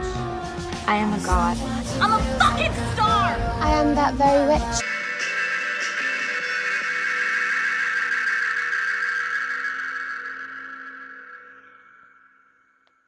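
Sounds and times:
background music held chord: 0:00.0 - 0:07.1.

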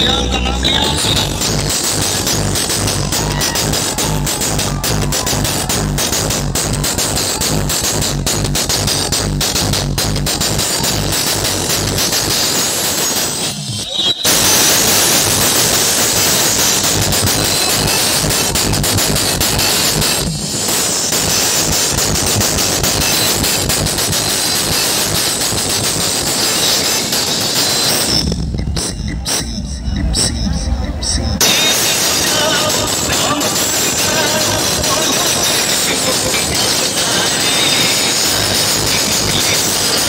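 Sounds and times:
dense crowd noise: 0:00.0 - 0:40.0
heavy bass: 0:00.0 - 0:40.0
loud electronic dance music: 0:00.0 - 0:40.0.

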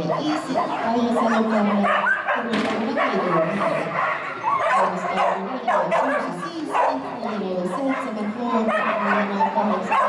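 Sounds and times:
crowd chatter: 0:00.0 - 0:10.0
dog barking and yipping: 0:00.0 - 0:10.0.

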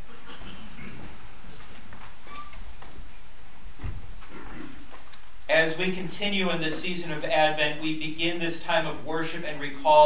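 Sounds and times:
people shuffling and rustling: 0:00.0 - 0:10.0
chairs and feet knocking: 0:03.8 - 0:05.1.

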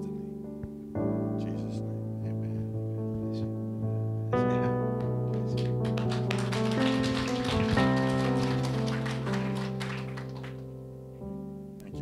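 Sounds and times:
sustained keyboard chords: 0:00.0 - 0:12.0.

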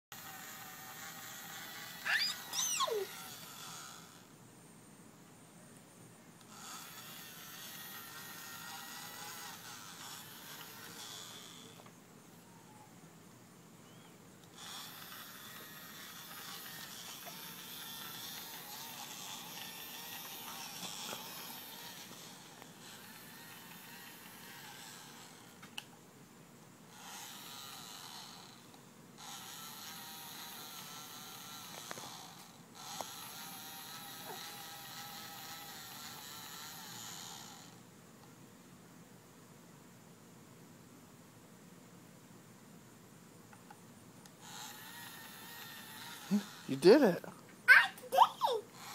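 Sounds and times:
small fan motor whirring: 0:00.1 - 0:04.4, 0:06.4 - 0:12.8, 0:13.9 - 0:26.0, 0:26.9 - 0:37.9, 0:43.6 - 0:48.9.

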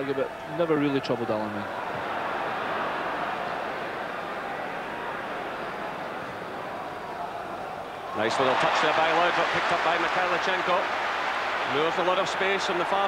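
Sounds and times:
stadium crowd noise: 0:00.0 - 0:13.0.

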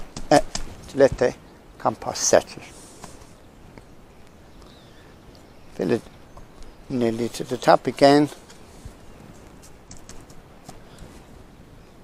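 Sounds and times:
soft clicks and rustles of handling: 0:07.4 - 0:11.3.

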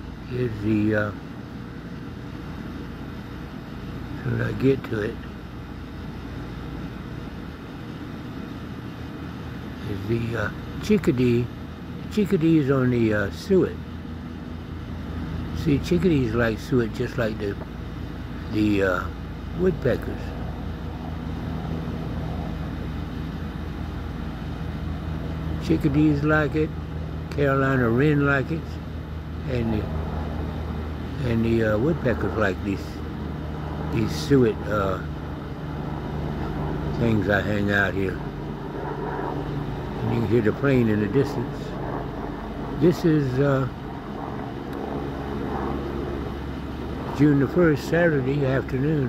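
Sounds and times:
distant airplane engine drone: 0:00.0 - 0:49.0.

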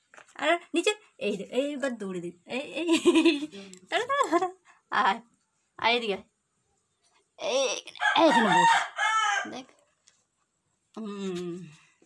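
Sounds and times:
rooster crowing: 0:08.0 - 0:09.7.

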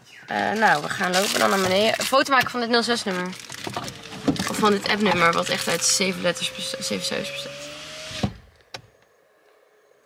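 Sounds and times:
motor stopping thump: 0:03.9 - 0:08.5
small electric motor whine: 0:03.9 - 0:08.5.

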